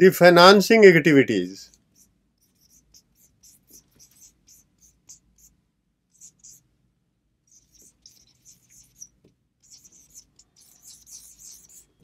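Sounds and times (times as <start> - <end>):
marker squeaking on whiteboard: 1.6 - 6.7, 7.4 - 12.0.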